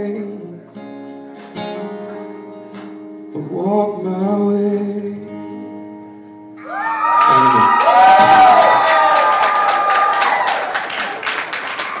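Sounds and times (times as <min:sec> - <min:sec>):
audience clapping and cheering: 0:06.7 - 0:12.0.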